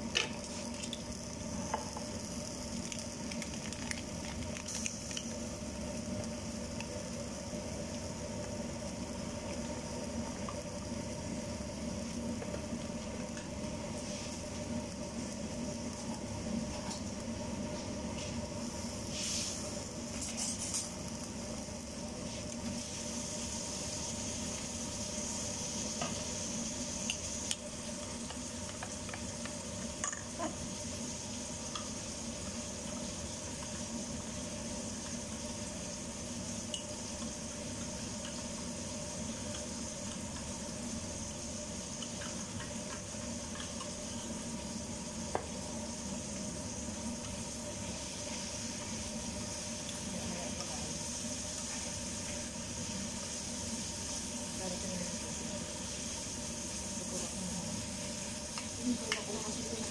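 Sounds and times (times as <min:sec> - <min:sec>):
food sizzling in a pan: 0:00.0 - 0:59.9.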